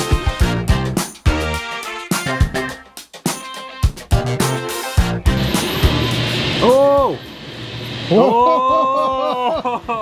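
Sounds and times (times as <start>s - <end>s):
background music: 0.0s - 6.8s.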